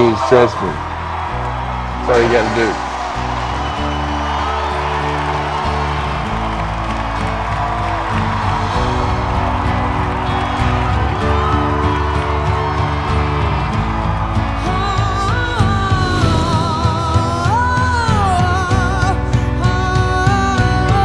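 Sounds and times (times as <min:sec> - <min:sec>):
film trailer music: 0:00.0 - 0:20.2
faint crowd cheering: 0:00.0 - 0:21.0.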